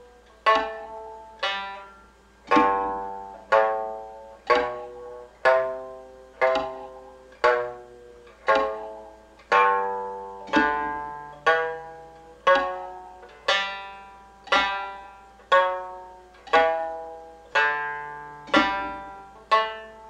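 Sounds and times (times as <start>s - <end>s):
plucked lute notes: 0.0s - 20.0s.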